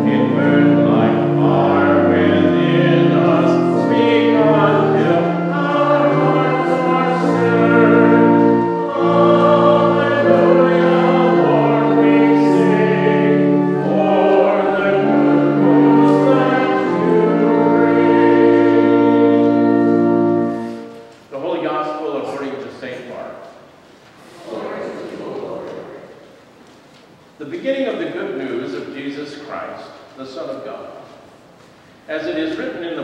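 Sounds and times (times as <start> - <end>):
congregation singing: 0.0 - 22.6, 24.2 - 26.6
organ chords: 0.0 - 22.8.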